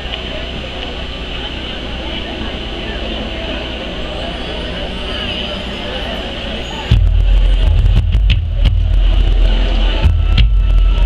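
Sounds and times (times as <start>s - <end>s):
crowd murmuring: 0.0s - 11.0s
sharp percussion hits: 6.9s - 11.0s.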